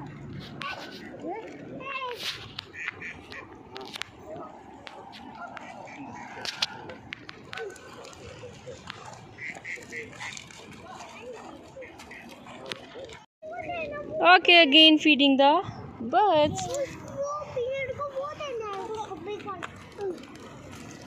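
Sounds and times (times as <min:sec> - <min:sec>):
young child's voice: 0:00.6 - 0:02.4, 0:13.4 - 0:14.3, 0:16.4 - 0:20.4
ducks and geese calling: 0:02.6 - 0:03.9, 0:05.2 - 0:07.0, 0:07.6 - 0:13.0.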